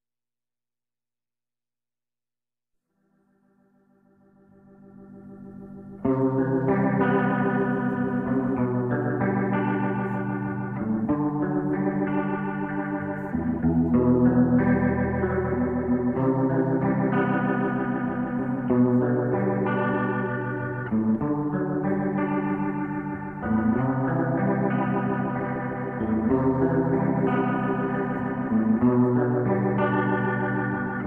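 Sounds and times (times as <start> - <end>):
organ playing sustained chords: 4.3 - 31.0.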